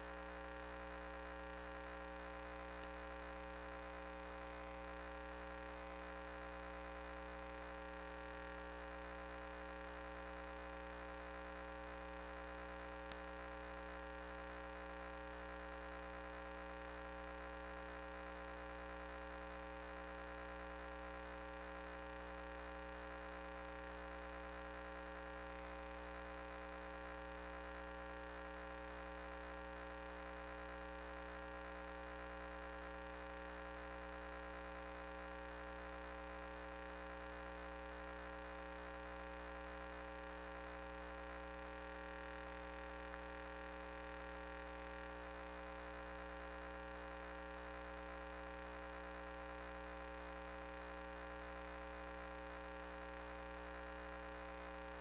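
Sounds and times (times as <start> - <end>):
electrical hum: 0.0 - 55.0.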